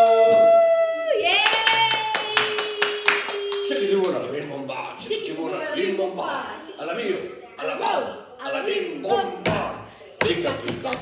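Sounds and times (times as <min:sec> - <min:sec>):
people clapping: 0:00.0 - 0:04.3.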